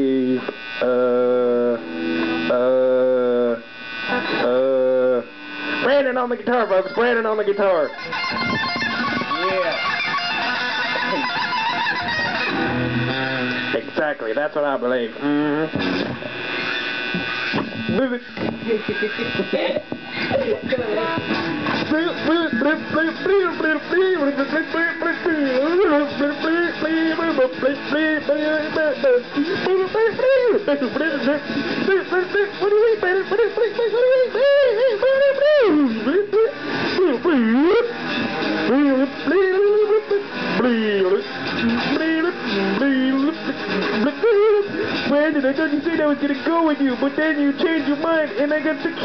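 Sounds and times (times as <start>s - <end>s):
wordless voice through microphone: 0.0s - 10.0s, 13.4s - 16.4s, 17.6s - 38.0s, 38.7s - 49.0s
buzzy tone: 0.0s - 49.0s
electric guitar: 0.0s - 49.0s.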